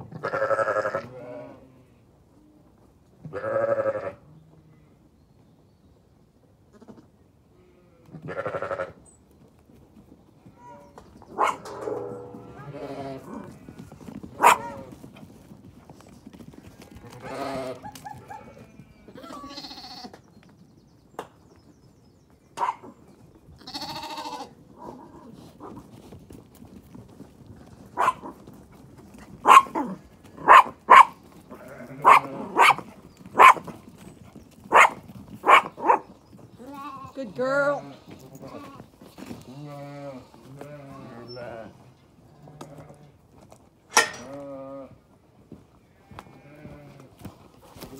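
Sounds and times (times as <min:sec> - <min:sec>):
sheep and lambs bleating: 0:00.0 - 0:02.0, 0:03.2 - 0:04.3, 0:06.7 - 0:09.0, 0:12.0 - 0:14.9, 0:16.7 - 0:20.2, 0:23.6 - 0:24.6, 0:31.5 - 0:32.7, 0:36.6 - 0:43.2, 0:45.8 - 0:47.1
small dog barking: 0:11.4 - 0:12.2, 0:14.4 - 0:14.8, 0:22.6 - 0:22.9, 0:28.0 - 0:28.3, 0:29.4 - 0:31.2, 0:32.0 - 0:33.7, 0:34.7 - 0:36.1.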